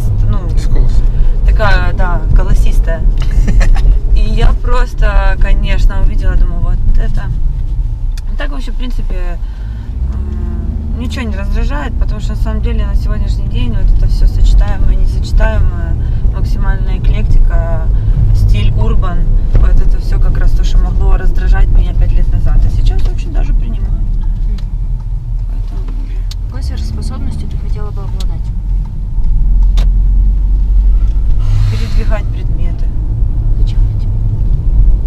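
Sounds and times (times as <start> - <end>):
woman talking: 0.0 - 7.4, 8.2 - 9.5, 10.1 - 24.2, 26.3 - 28.6, 31.6 - 34.2
car road and engine rumble: 0.0 - 35.0.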